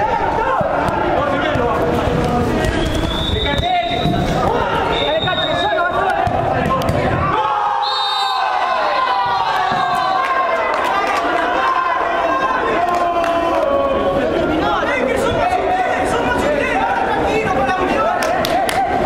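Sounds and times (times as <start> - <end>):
people shouting: 0.0 - 1.8, 2.5 - 19.0.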